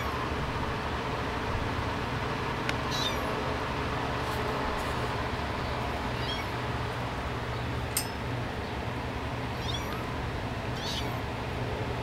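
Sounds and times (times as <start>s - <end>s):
steady low hum: 0.0s - 12.0s
kittens mewing: 2.8s - 3.4s, 6.0s - 6.6s, 9.5s - 11.2s.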